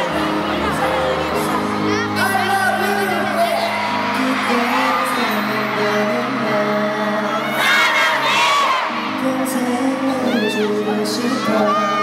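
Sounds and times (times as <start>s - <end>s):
crowd screaming and cheering: 0.0s - 12.0s
music: 0.0s - 12.0s.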